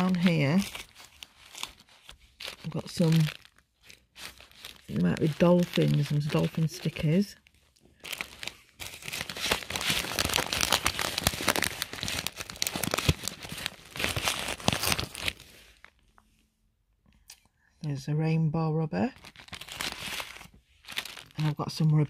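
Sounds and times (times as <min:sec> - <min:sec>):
plastic sleeve crinkling: 0:00.0 - 0:16.3, 0:19.2 - 0:22.0.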